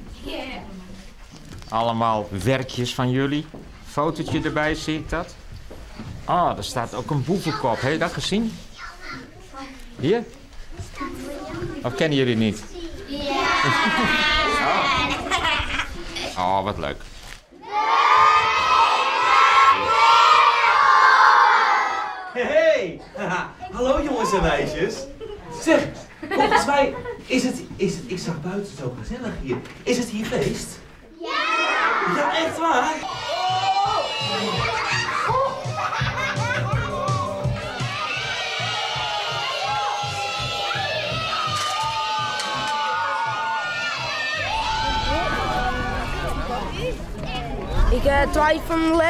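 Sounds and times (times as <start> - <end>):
children shouting and cheering: 12.9 - 16.4, 17.6 - 22.4, 31.2 - 48.7
low regular beat: 33.1 - 42.6.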